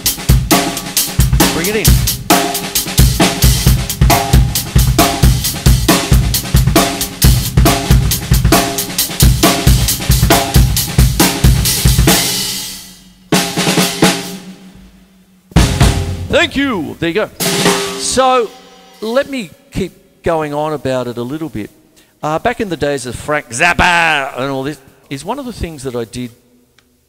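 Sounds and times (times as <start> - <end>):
drum kit playing funk beat: 0.0 - 14.5, 15.5 - 19.4.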